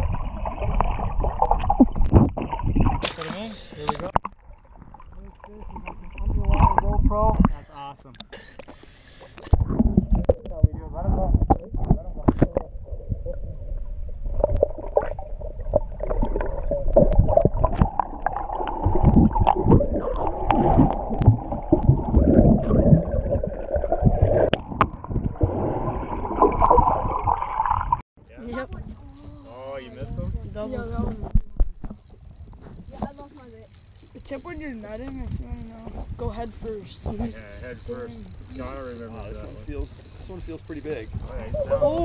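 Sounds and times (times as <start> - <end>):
water gurgling underwater: 0.0 - 7.6, 9.2 - 28.0.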